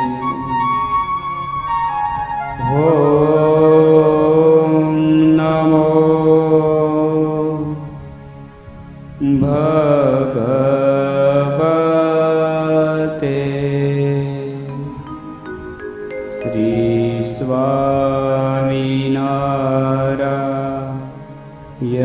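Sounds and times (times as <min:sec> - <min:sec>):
man chanting: 0:00.0 - 0:00.8, 0:02.6 - 0:08.0, 0:09.2 - 0:15.0, 0:16.4 - 0:21.2, 0:21.8 - 0:22.0
steady low drone: 0:00.0 - 0:22.0.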